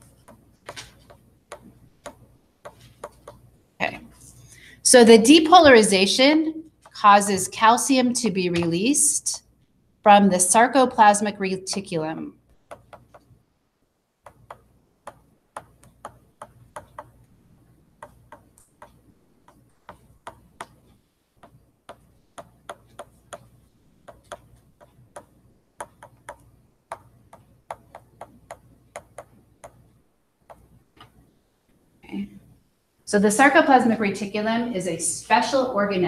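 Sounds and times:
stylus tapping on writing surface: 0:00.0 - 0:03.5, 0:11.7 - 0:13.3, 0:14.2 - 0:17.3, 0:18.0 - 0:31.2.

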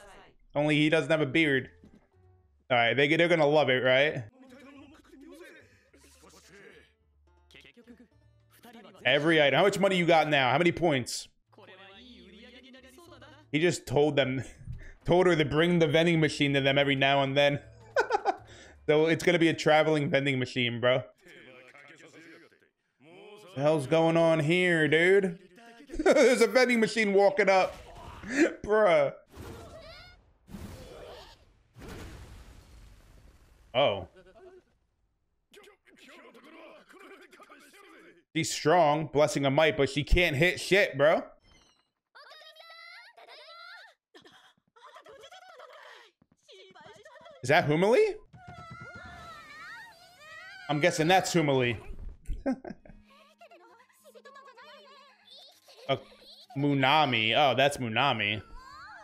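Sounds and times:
faint cartoon dialogue: 0:02.7 - 0:17.6, 0:18.9 - 0:31.4, 0:33.8 - 0:34.8, 0:35.5 - 0:38.9, 0:44.8 - 0:59.0.

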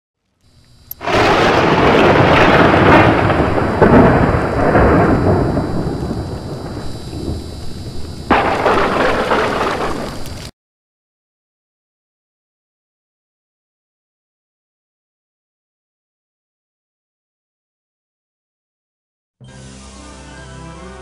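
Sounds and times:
loud crash and rumble: 0:01.0 - 0:07.6, 0:08.2 - 0:10.5.

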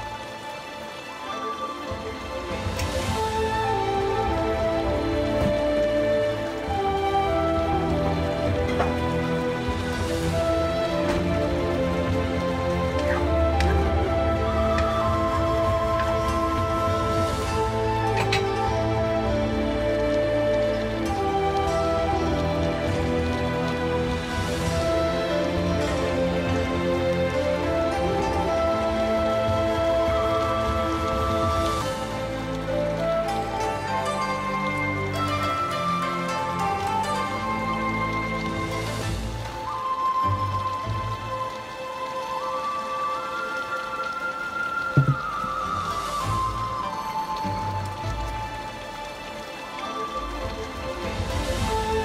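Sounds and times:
background music held notes: 0:00.0 - 0:52.0.

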